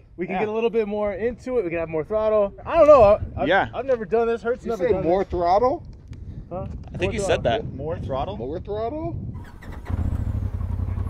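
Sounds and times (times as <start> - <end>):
engine idling rumble: 9.4 - 11.0.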